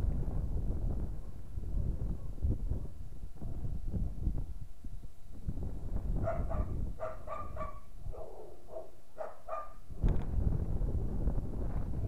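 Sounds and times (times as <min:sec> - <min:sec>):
wind rumbling on microphone: 0:00.0 - 0:12.0
dog barking: 0:06.2 - 0:09.8.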